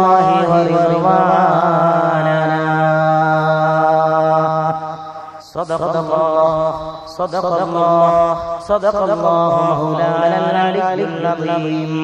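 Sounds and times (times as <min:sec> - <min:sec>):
man chanting recitation: 0:00.0 - 0:12.0.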